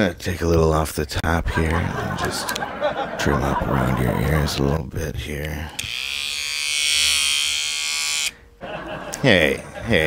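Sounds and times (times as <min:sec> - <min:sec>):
electric hair clippers buzzing: 0:05.4 - 0:08.4.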